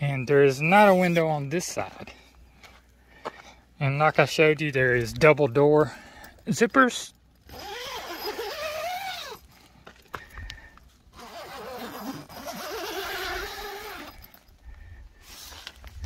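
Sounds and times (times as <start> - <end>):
tent door zipper pulled: 7.5 - 9.5, 11.1 - 14.4, 15.2 - 15.8.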